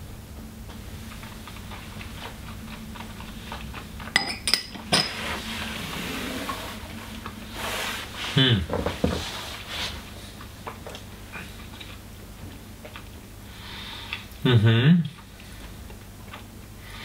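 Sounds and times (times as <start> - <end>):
glasses clinking: 4.2 - 5.2.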